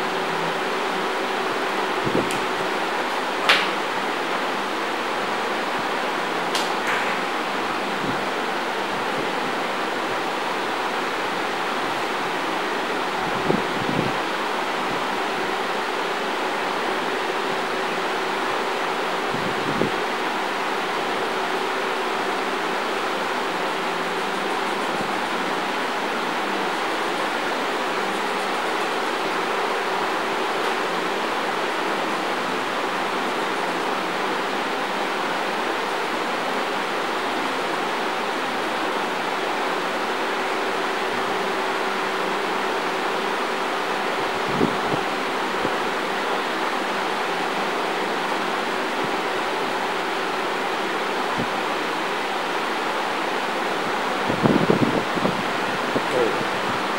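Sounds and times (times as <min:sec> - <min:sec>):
steady hiss: 0:00.0 - 0:56.9.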